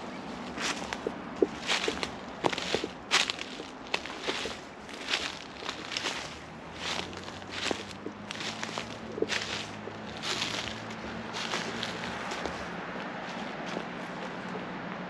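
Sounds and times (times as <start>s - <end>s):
footsteps crunching dry leaves: 0.0s - 14.6s.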